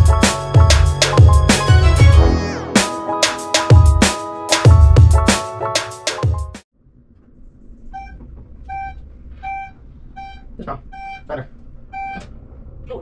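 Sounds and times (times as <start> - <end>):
elevator beeping: 7.8 - 12.5.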